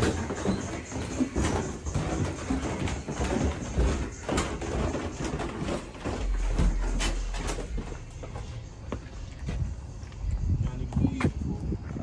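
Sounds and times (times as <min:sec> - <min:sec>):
footsteps in a corridor: 0:00.0 - 0:12.0.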